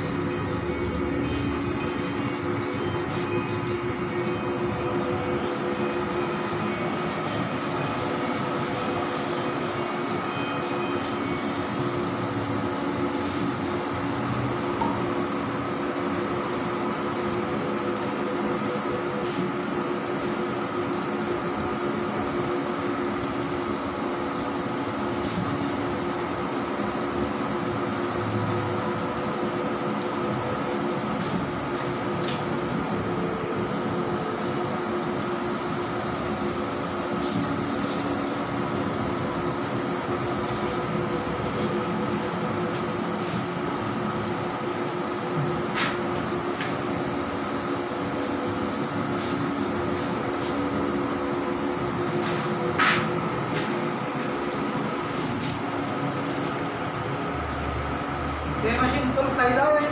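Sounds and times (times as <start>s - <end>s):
printer mechanical hum: 0.0s - 59.9s.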